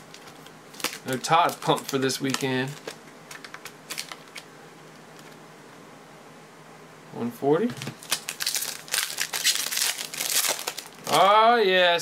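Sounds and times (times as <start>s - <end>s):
foil wrapper crinkling: 0.0s - 4.5s, 7.8s - 11.3s.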